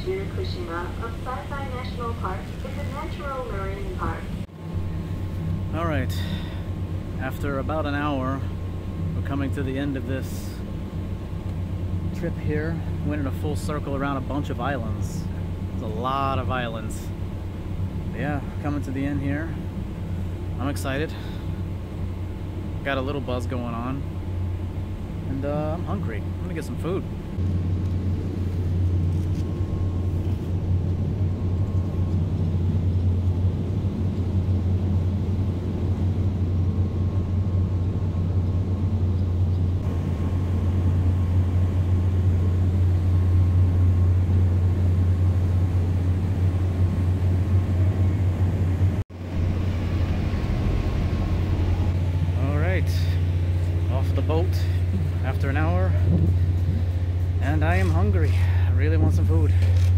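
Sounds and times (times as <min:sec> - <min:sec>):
steady low drone: 0:00.0 - 0:59.9.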